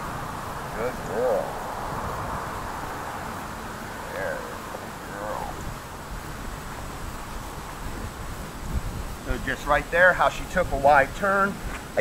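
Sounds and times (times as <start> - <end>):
outdoor hiss: 0.0 - 12.0
wind rumbling on microphone: 0.0 - 12.0.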